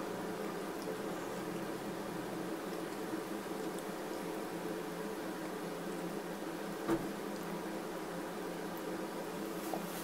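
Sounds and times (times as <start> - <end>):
low room hum with hiss: 0.0 - 10.0.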